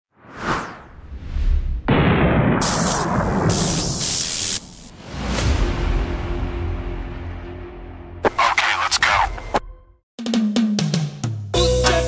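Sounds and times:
whoosh: 0:00.2 - 0:04.0
loud boom-like crash: 0:01.7 - 0:04.1.

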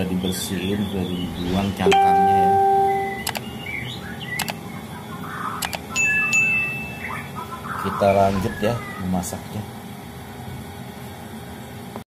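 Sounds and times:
bright bell chime: 0:01.9 - 0:03.2
mouse clicks: 0:04.4 - 0:04.6.

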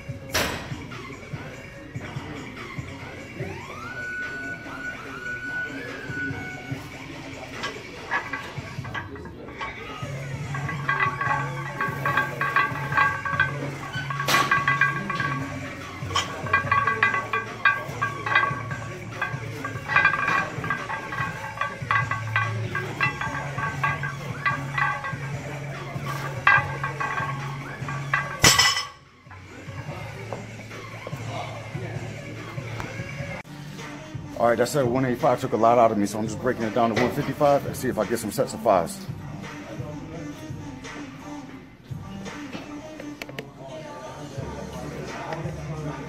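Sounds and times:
gym background music: 0:00.0 - 0:46.0
barbell plates clinking: 0:06.9 - 0:30.4
barbell clanking down: 0:07.6 - 0:29.1.

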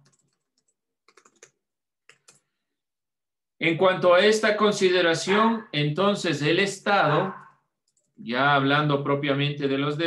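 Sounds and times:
typing on a computer keyboard: 0:00.0 - 0:02.4, 0:07.8 - 0:08.2.

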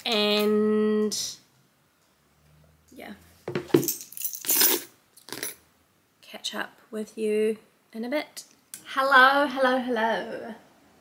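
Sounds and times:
metallic clinking handling noises: 0:03.6 - 0:05.6.

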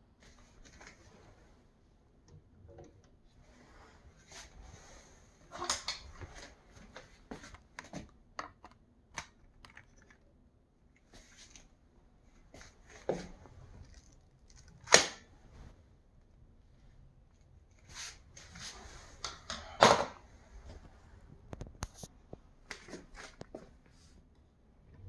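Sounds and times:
plastic clicks and rustles: 0:05.7 - 0:10.3, 0:13.7 - 0:15.2.

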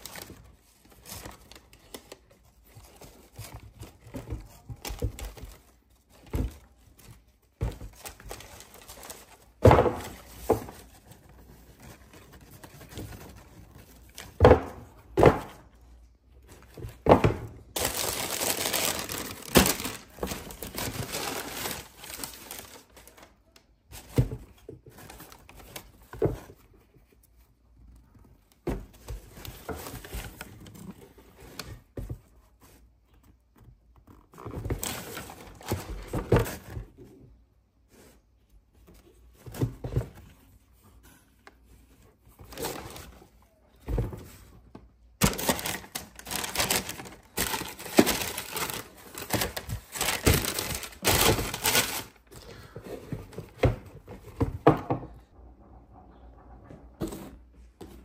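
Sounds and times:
tissue paper and box rustling: 0:00.0 - 0:15.7, 0:16.4 - 0:27.4, 0:34.4 - 0:36.9, 0:39.0 - 0:44.6, 0:45.2 - 0:54.6.

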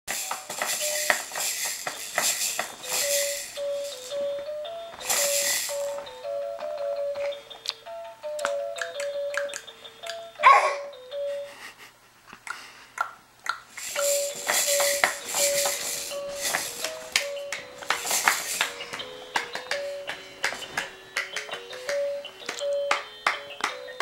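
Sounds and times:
rattling shaker sound effects: 0:00.1 - 0:06.2, 0:13.7 - 0:20.9
simple electronic tune: 0:00.2 - 0:01.4, 0:02.4 - 0:11.3.

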